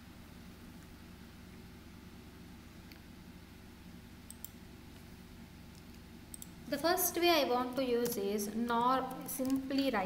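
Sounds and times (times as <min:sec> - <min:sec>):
computer mouse clicks: 0:04.3 - 0:04.6, 0:05.7 - 0:06.6, 0:09.1 - 0:09.9.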